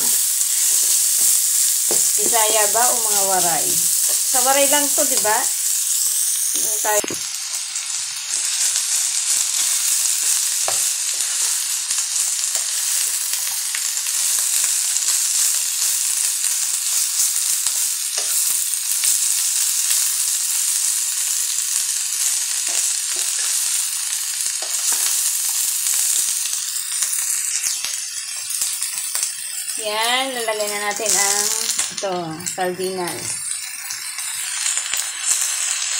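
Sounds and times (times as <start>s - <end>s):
vegetables sizzling in hot oil: 0.0s - 35.9s.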